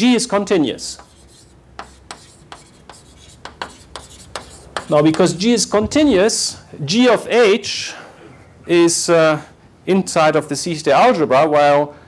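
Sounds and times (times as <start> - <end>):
chalk scratching on blackboard: 0.8 - 5.4.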